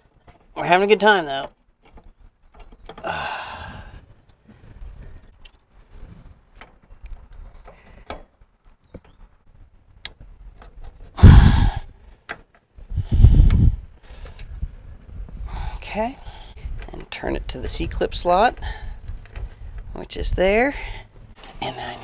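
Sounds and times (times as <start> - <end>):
man sighing and exhaling hard: 3.0 - 4.1, 11.2 - 12.0, 15.4 - 16.6.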